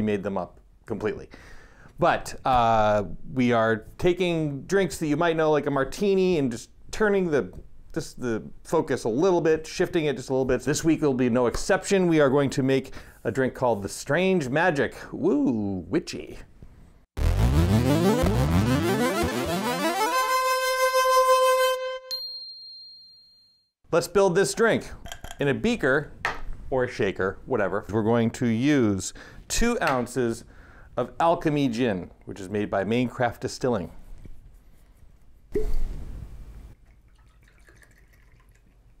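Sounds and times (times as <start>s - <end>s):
intro music: 17.2s - 22.1s
high ding: 22.0s - 23.7s
cork popping from bottle: 35.5s - 36.0s
liquid pouring into metal cup: 36.8s - 39.0s.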